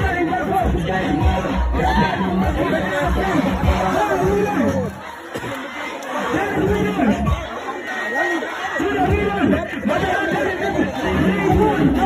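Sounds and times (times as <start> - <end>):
crowd background noise: 0.0 - 12.0
voices talking close: 0.0 - 12.0.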